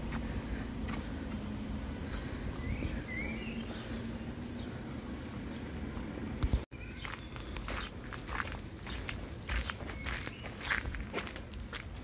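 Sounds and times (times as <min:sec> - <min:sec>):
footsteps of person walking: 0:00.0 - 0:03.8, 0:05.1 - 0:12.0.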